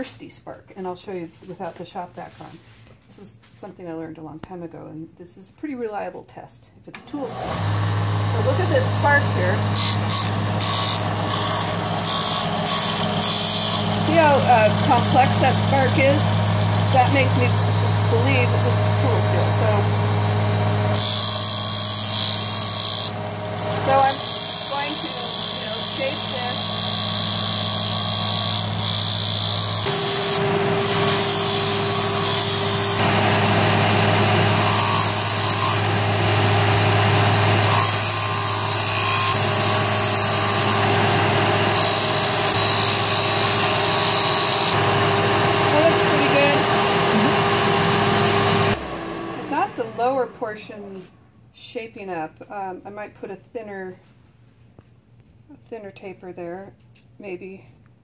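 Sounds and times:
sander motor hum: 7.3s - 50.4s.

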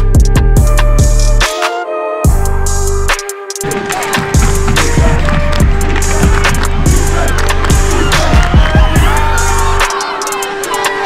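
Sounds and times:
music with deep bass: 0.0s - 11.0s.

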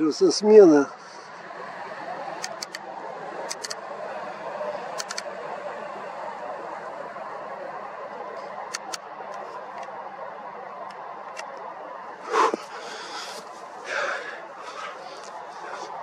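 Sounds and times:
distant traffic hum: 0.0s - 16.0s
faint sharp clicks: 2.4s - 2.8s, 4.9s - 5.3s.

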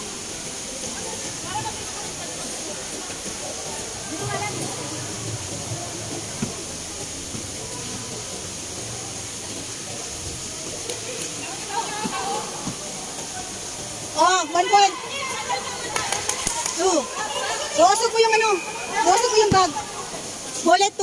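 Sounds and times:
faint scattered voices: 0.0s - 21.0s
steady hiss: 0.0s - 21.0s.

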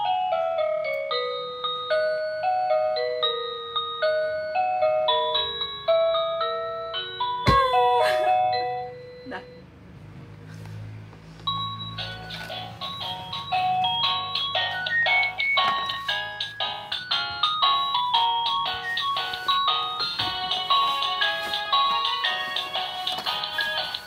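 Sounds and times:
electronic toy beeping melody: 0.0s - 9.7s, 11.5s - 24.0s.

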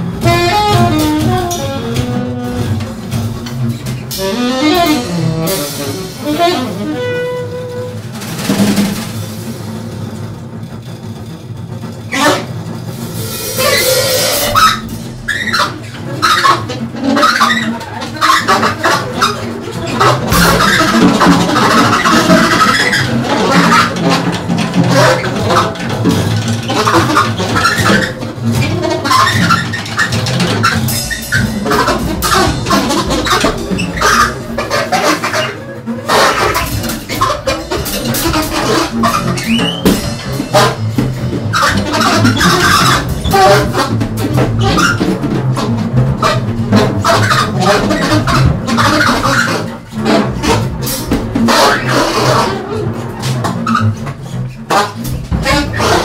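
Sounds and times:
alto saxophone: 0.0s - 8.2s
upright double bass: 0.0s - 9.2s, 12.1s - 56.0s
drum kit with cymbals: 0.0s - 56.0s.

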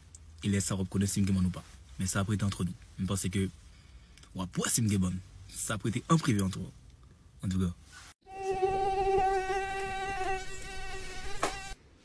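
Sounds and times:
mosquito buzzing whine: 8.2s - 11.8s.

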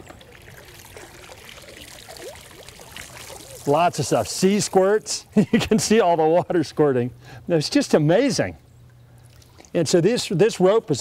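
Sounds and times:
water splashing on surface: 0.0s - 5.1s
water pouring and dripping off rope: 0.0s - 5.2s, 9.2s - 9.8s.

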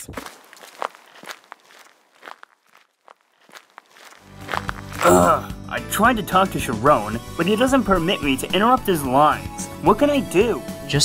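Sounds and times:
cartoon footsteps: 0.0s - 5.4s.

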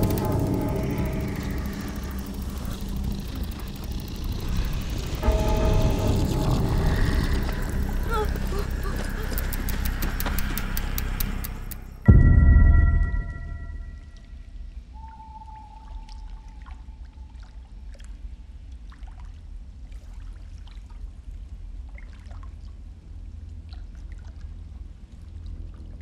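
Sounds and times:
fast ticking: 0.0s - 12.1s
held synth notes: 0.0s - 14.4s
loud low boom: 0.0s - 14.7s
droning rumbling synth: 0.0s - 17.6s.

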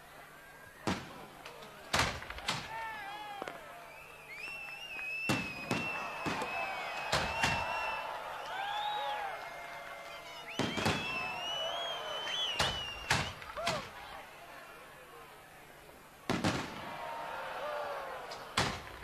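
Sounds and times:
firework whistling: 4.0s - 9.1s, 10.2s - 13.8s
firework bangs: 5.2s - 7.9s, 10.6s - 11.4s, 12.5s - 14.0s, 16.3s - 17.1s, 18.3s - 19.0s.

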